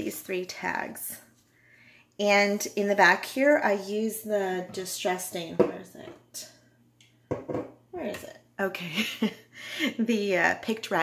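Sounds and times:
woman speaking: 0.0 - 1.3, 2.2 - 6.6, 7.9 - 11.0.

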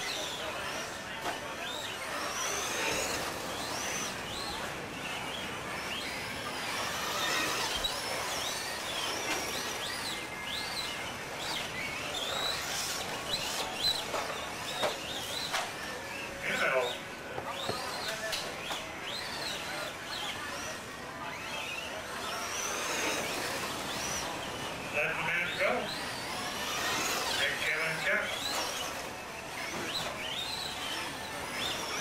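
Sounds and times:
toy truck motors whining: 0.0 - 32.0
voices: 0.0 - 32.0.

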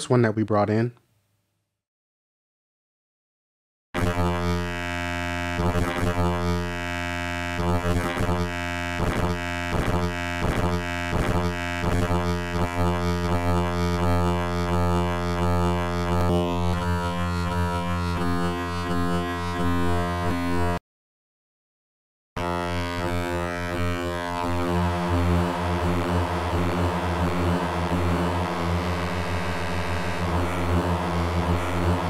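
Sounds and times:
sustained low synthesizer note: 4.0 - 20.8, 22.4 - 32.0.

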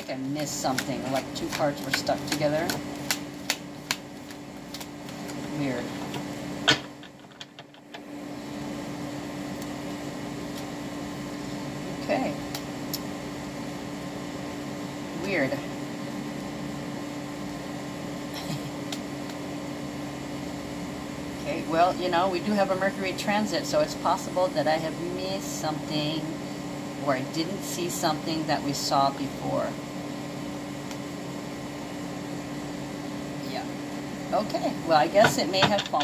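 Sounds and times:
appliance humming: 0.0 - 36.0
cards clicking: 0.4 - 5.5.

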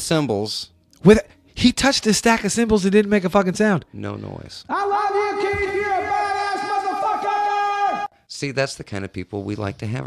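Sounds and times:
man screaming: 4.7 - 8.1.

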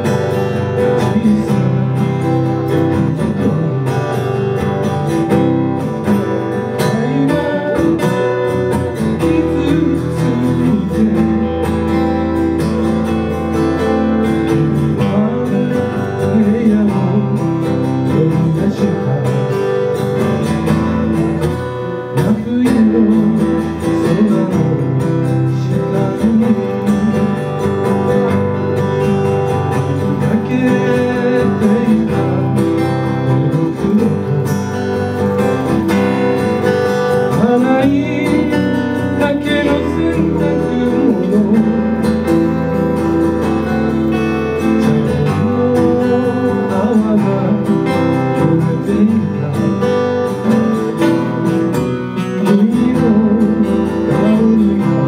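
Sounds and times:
acoustic guitars playing: 0.0 - 55.0
man singing: 0.0 - 55.0.

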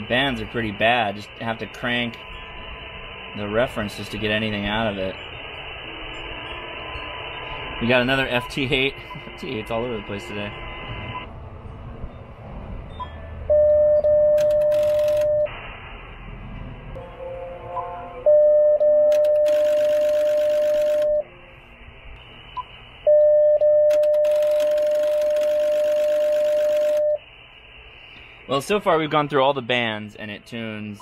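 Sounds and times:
radio static hiss: 0.0 - 11.3, 14.4 - 16.9, 19.1 - 23.1, 23.9 - 31.0
transceiver beep: 7.4 - 11.3, 13.0 - 15.5, 18.3 - 21.3, 22.6 - 27.2.

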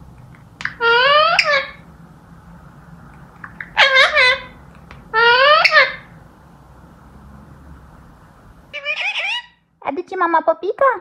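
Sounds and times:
parakeet call: 0.6 - 1.8, 3.6 - 6.1, 8.7 - 9.6.

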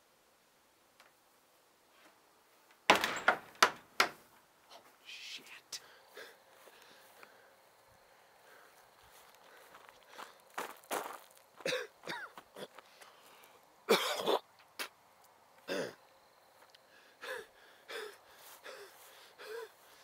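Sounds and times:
person gasping for breath: 5.8 - 7.5, 16.9 - 20.0
footsteps through grass: 6.2 - 11.7
person coughing: 11.6 - 12.7, 13.9 - 14.4, 15.7 - 16.0.

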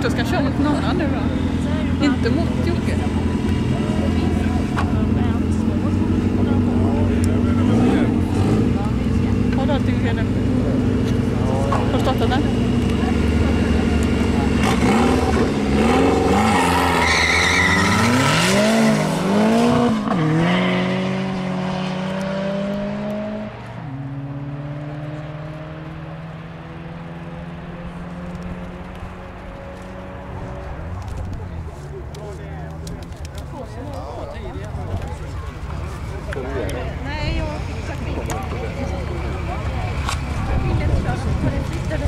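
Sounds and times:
car engines revving hard: 0.0 - 42.0.

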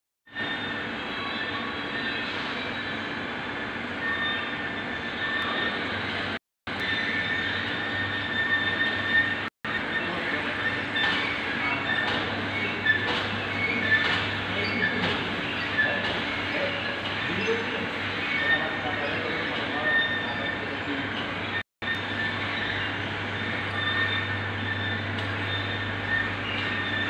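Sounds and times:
workshop machinery humming and whining: 0.3 - 27.0.

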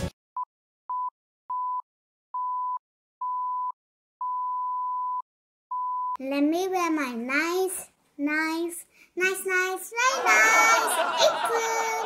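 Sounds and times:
electronic countdown beeps: 2.4 - 6.2.

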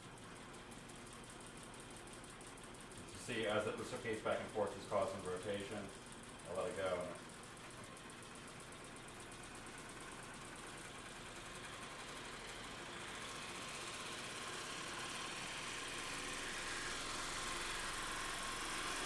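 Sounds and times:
magnetic motor running: 0.0 - 19.0.

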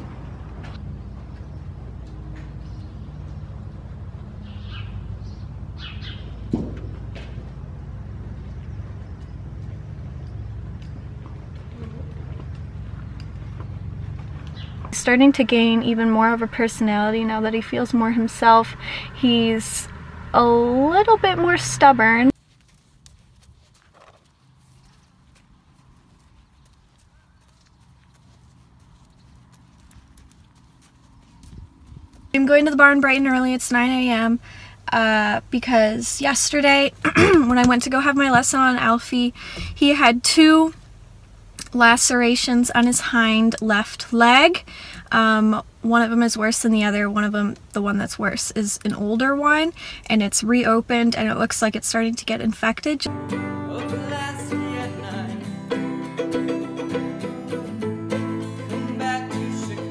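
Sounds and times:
horse hooves walking on sand: 0.0 - 4.2, 6.4 - 18.2, 22.2 - 34.4
steady low rumble: 0.0 - 22.4, 27.9 - 44.5
small birds chirping: 2.5 - 7.1, 8.4 - 15.0, 24.2 - 32.3.

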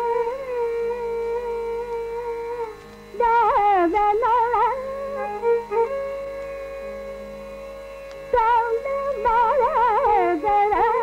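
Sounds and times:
faint low drone: 0.0 - 11.0.

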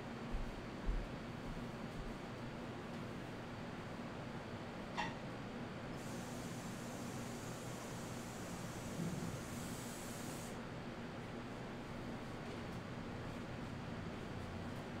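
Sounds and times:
room hum: 0.0 - 15.0
high hiss: 6.0 - 10.6.

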